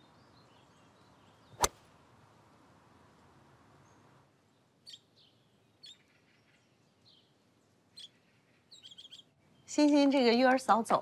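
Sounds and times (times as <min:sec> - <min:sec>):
faint birdsong: 0:00.0 - 0:02.4, 0:03.2 - 0:11.0
golf club striking ball: 0:01.6 - 0:01.8.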